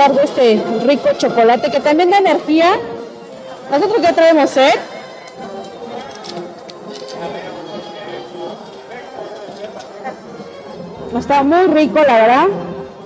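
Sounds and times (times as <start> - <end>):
background music: 0.0 - 13.0
murmur of crowd chatter: 0.0 - 13.0.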